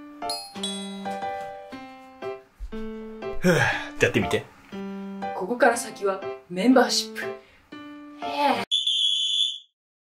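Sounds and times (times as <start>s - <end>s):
high-pitched electronic beep: 8.7s - 9.7s.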